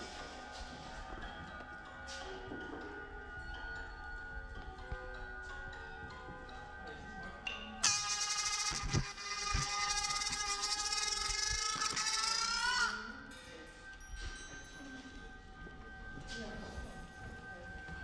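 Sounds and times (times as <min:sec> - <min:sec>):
quiet steady ringing tones: 0:00.0 - 0:12.4, 0:13.1 - 0:18.0
loud high squealing tone: 0:07.8 - 0:13.4.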